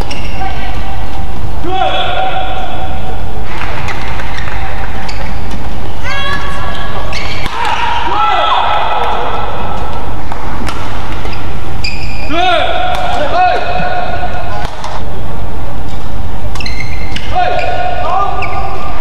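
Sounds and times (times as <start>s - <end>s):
crowd shouting and cheering: 1.6s - 15.1s
racket hitting shuttlecock: 7.2s - 7.9s, 9.0s - 11.6s, 12.8s - 13.9s, 14.5s - 15.1s.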